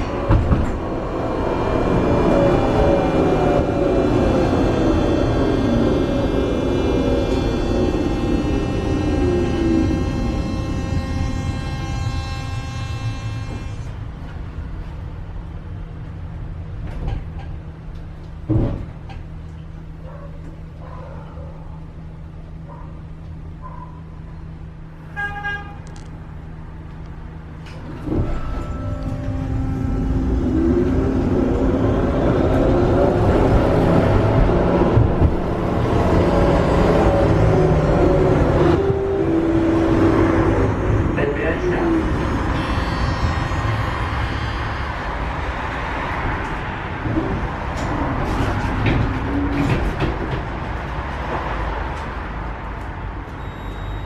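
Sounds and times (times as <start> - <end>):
tram motor whine: 0.0 - 20.8, 24.2 - 54.0
tram low hum: 0.0 - 54.0
tram pulling away rumble: 0.0 - 54.0.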